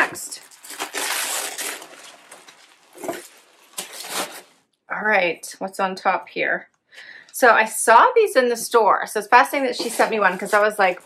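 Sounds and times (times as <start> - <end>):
clothes and packaging rustling: 0.0 - 4.7, 9.6 - 11.0.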